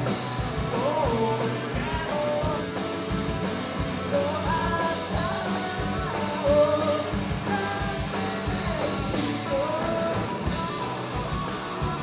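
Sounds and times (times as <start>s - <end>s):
bass guitar: 0.0s - 12.0s
drum kit beat: 0.0s - 12.0s
electric guitars: 0.0s - 12.0s.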